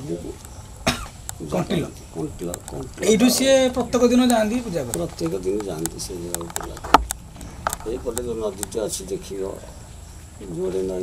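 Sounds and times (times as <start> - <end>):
person coughing: 0.8 - 1.2.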